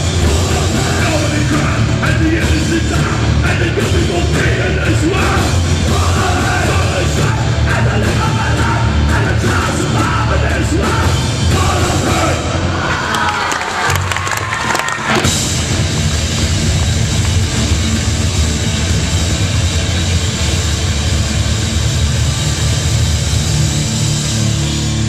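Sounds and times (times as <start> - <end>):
punk band playing live: 0.0 - 25.0.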